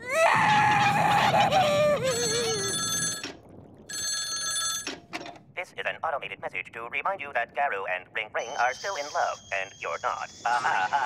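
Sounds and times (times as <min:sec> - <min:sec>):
cartoon girl wailing cry: 0:00.0 - 0:02.8
rotary telephone bell ringing: 0:03.9 - 0:05.0.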